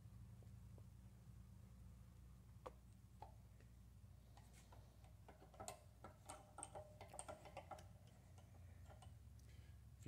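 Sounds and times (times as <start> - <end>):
low steady hum: 0.0 - 10.0
steel on steel clicks and taps: 4.4 - 9.5.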